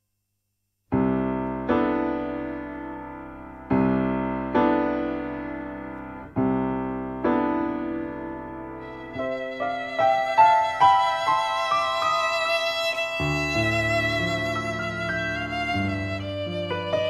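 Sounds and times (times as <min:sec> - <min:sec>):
piano chords ringing: 0:00.9 - 0:17.0.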